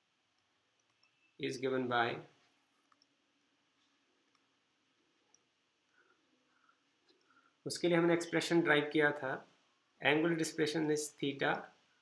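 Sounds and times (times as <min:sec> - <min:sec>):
faint low hum: 0:00.0 - 0:12.0
stylus clicking on tablet: 0:00.3 - 0:01.4, 0:02.7 - 0:05.6
person speaking: 0:01.4 - 0:02.4, 0:07.6 - 0:11.8.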